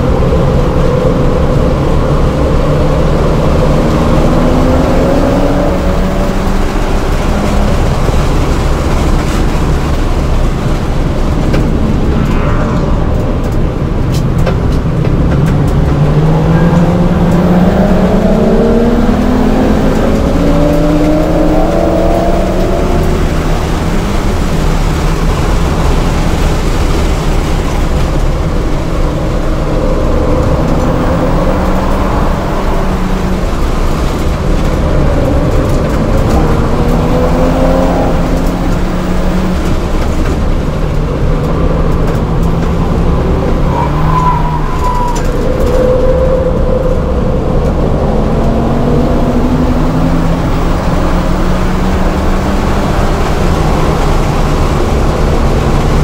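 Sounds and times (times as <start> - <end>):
car engine revving in cabin: 0.0 - 56.0
tyre and wind noise: 0.0 - 56.0.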